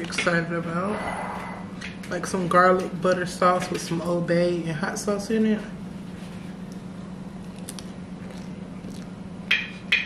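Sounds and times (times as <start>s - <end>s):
steady low hum: 0.0s - 10.0s
person chewing: 7.4s - 9.2s.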